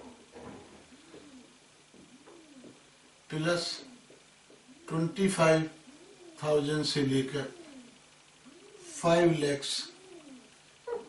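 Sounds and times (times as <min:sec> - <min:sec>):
pigeon cooing: 0:00.0 - 0:11.0.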